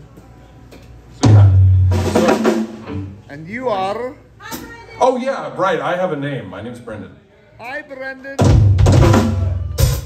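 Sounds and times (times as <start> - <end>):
drum kit: 0.8 - 3.3, 8.4 - 10.0.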